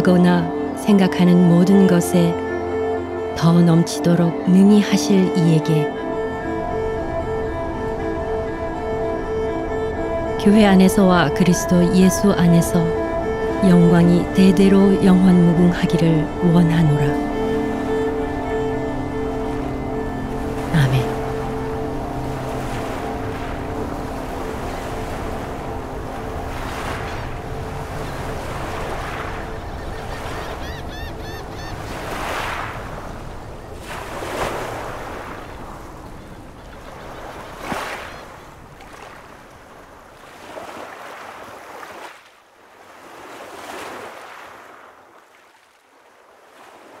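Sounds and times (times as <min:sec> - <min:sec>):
held chord of background music: 0:00.0 - 0:35.2.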